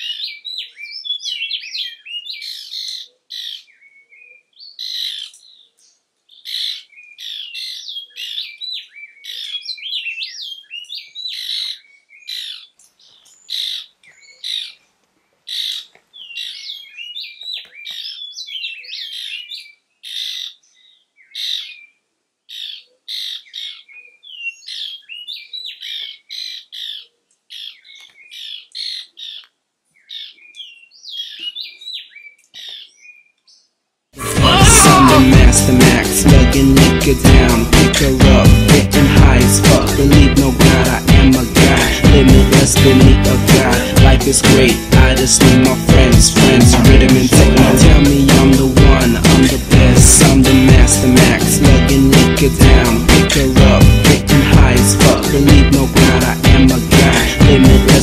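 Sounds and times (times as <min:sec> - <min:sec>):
birds chattering and singing: 0:00.0 - 0:33.9, 0:34.5 - 0:58.0.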